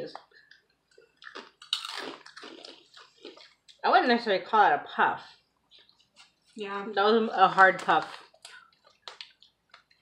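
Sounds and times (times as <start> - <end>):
crunching and chewing: 0.1 - 3.8, 5.3 - 6.6, 7.8 - 10.0.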